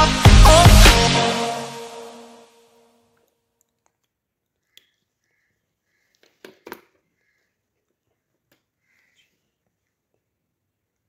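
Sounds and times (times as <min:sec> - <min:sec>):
background music: 0:00.0 - 0:02.9.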